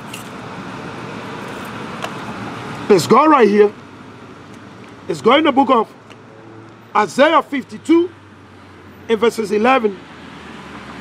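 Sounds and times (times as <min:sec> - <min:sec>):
steady background noise: 0:00.0 - 0:11.0
man speaking: 0:02.9 - 0:03.8, 0:05.1 - 0:06.0, 0:07.0 - 0:08.2, 0:09.1 - 0:10.0.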